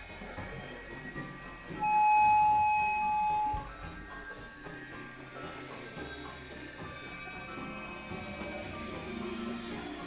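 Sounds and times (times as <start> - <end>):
held synth tones: 1.8 - 3.7
loud high synth tone: 1.8 - 3.7.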